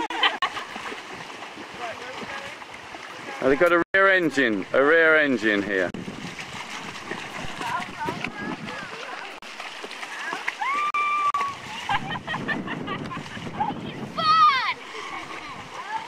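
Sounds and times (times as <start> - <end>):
water splashing from kicking legs: 0.0 - 16.0.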